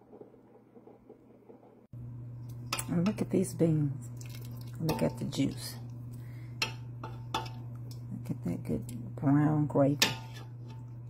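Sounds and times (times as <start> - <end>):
steady low hum: 0.1 - 11.0
metal spoon clinking in a pot: 6.6 - 7.7, 10.0 - 11.0.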